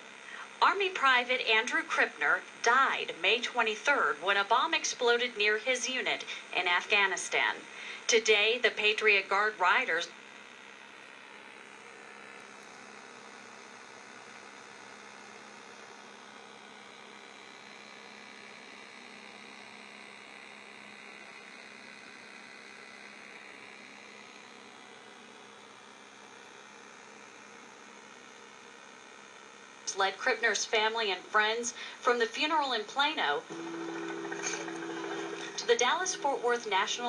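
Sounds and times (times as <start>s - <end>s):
low electrical hum: 0.0s - 37.0s.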